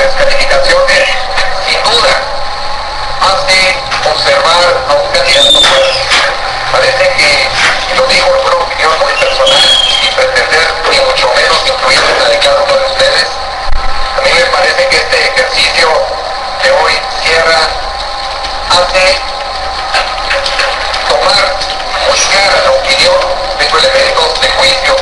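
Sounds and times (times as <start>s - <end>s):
thin radio news voice: 0.0s - 2.4s, 3.2s - 18.0s, 18.6s - 25.0s.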